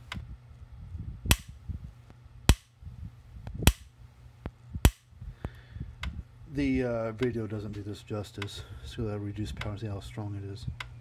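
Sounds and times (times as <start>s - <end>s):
electric spark snaps: 1.3s - 1.6s, 2.5s - 2.7s, 3.6s - 5.1s.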